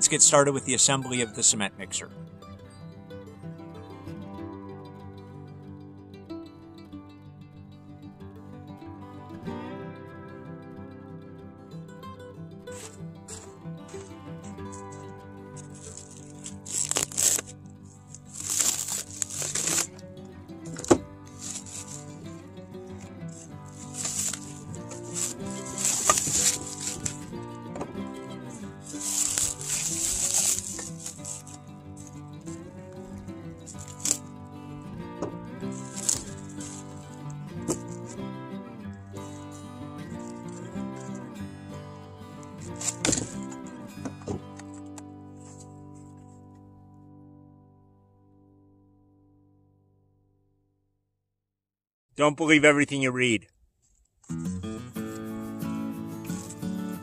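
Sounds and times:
instrumental background music: 0:00.0 - 0:47.3, 0:54.3 - 0:57.0
plastic shrink-wrap crinkling and tearing: 0:12.8 - 0:20.0, 0:20.6 - 0:34.3, 0:35.6 - 0:38.2, 0:39.2 - 0:41.3, 0:42.4 - 0:43.6.

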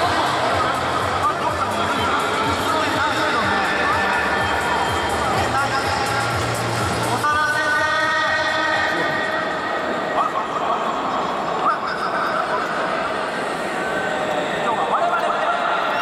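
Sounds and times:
music: 0:00.0 - 0:09.4
voice over public address: 0:00.0 - 0:13.0
stadium crowd murmur: 0:00.0 - 0:16.0.

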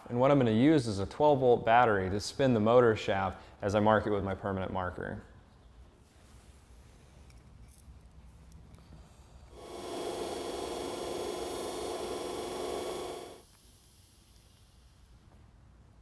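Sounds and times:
electric motor whining: 0:09.6 - 0:13.4.

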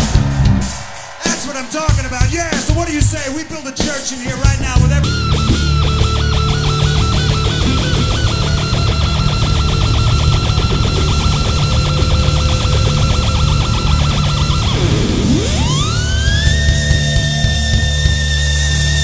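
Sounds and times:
rock band playing live: 0:00.0 - 0:19.0
electric guitar picking high note: 0:04.8 - 0:19.0.

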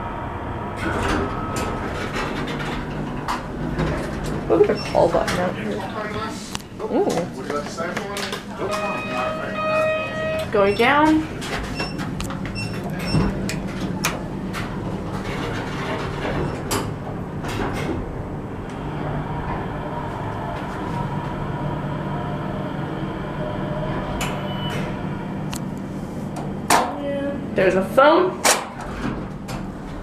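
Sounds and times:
elevator doors sliding shut: 0:00.0 - 0:06.1, 0:08.5 - 0:27.5
elevator hum: 0:00.0 - 0:30.0
short high tone: 0:08.6 - 0:10.5.

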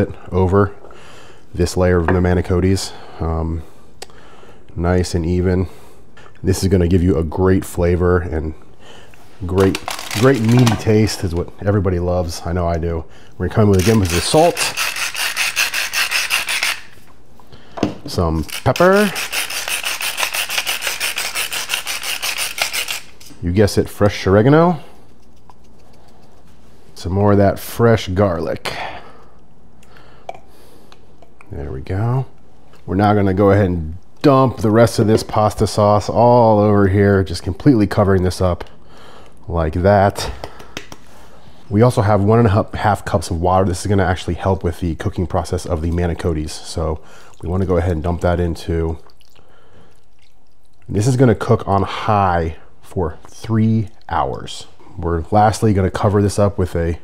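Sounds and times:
low room hum: 0:00.0 - 0:57.0.

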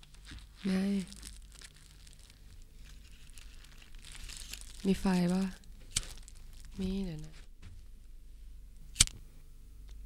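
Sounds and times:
faint low hum: 0:00.0 - 0:10.0
woman speaking: 0:00.6 - 0:01.2, 0:04.8 - 0:05.6, 0:06.7 - 0:07.4
sharp click: 0:09.0 - 0:09.2.

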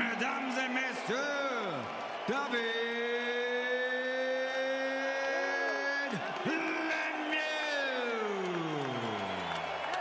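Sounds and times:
announcer drawing out a name: 0:05.0 - 0:07.4.

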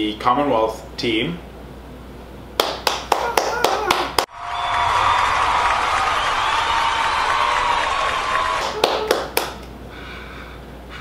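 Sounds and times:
hands clapping: 0:02.6 - 0:09.7.

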